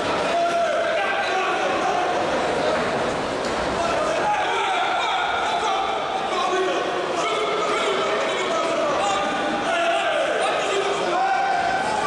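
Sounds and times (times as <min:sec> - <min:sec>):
crowd shouting: 0:00.0 - 0:02.5, 0:03.7 - 0:12.0.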